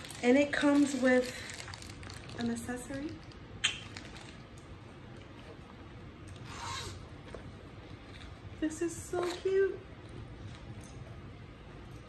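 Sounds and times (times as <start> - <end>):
zipper being pulled open: 6.5 - 7.0.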